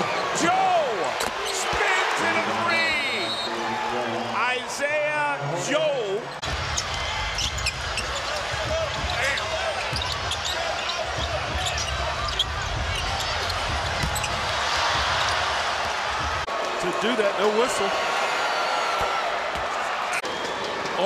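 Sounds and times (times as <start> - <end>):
arena crowd noise: 0.0 - 21.0
sneaker squeaks on hardwood: 7.4 - 14.5
basketball dribbling: 7.6 - 15.4.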